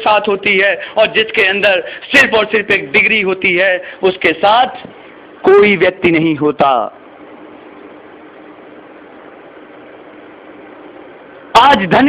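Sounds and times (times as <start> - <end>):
faint even hum: 0.0 - 12.0
steady background hiss: 0.0 - 12.0.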